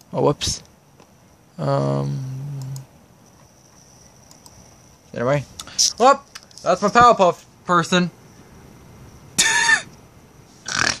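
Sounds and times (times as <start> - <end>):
person breathy vocal noises: 1.6 - 2.8.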